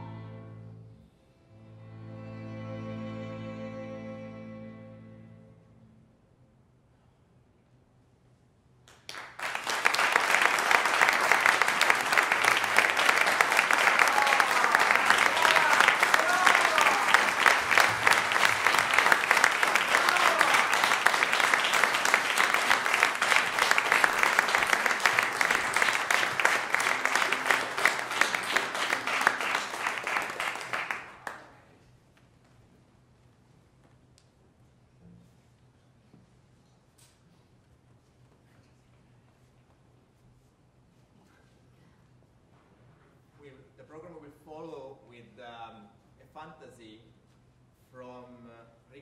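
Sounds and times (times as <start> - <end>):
audience applauding: 8.9 - 31.6.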